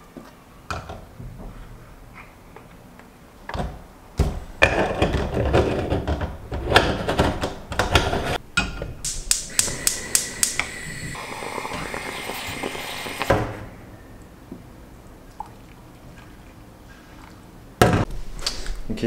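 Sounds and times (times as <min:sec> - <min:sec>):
gas burner clicks: 0:09.0 - 0:11.1
moka pot hissing sputter: 0:09.1 - 0:13.7
coffee pouring into cup: 0:10.0 - 0:13.6.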